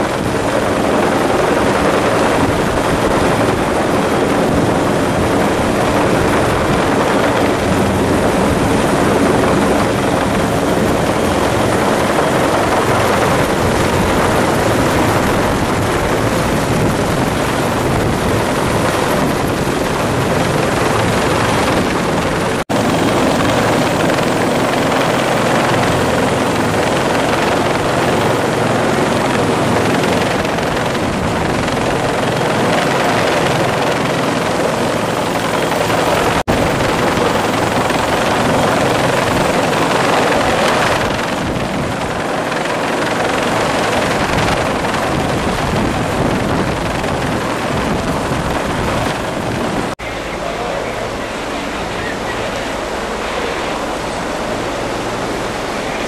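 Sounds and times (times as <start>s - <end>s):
helicopter rotor and engine: 0.0s - 56.0s.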